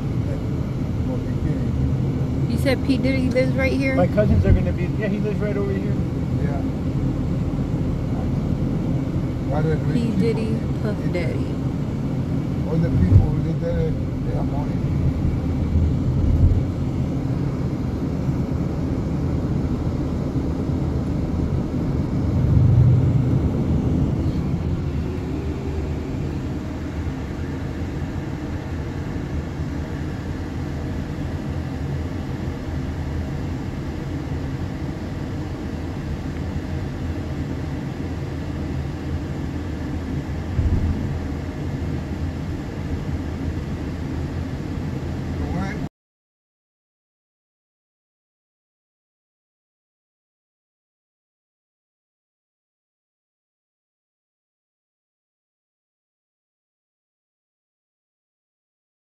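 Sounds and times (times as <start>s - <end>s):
car road and engine rumble: 0.0s - 45.9s.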